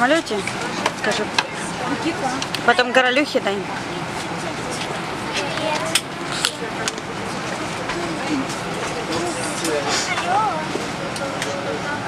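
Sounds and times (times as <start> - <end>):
airliner cabin noise: 0.0 - 12.0
low voices: 0.0 - 12.0.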